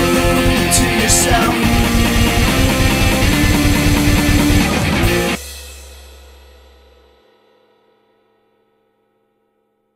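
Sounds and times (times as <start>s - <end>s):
distorted guitar chord ringing: 0.0s - 5.4s
cymbal decaying: 1.1s - 7.3s.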